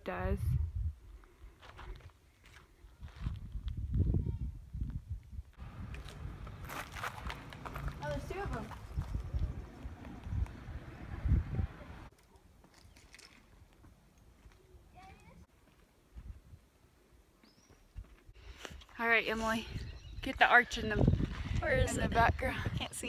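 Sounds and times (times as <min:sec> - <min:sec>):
wind buffeting microphone: 0:00.2 - 0:01.2, 0:02.9 - 0:12.1, 0:19.5 - 0:23.0
footsteps crunching on gravel: 0:05.6 - 0:10.3, 0:15.5 - 0:16.4.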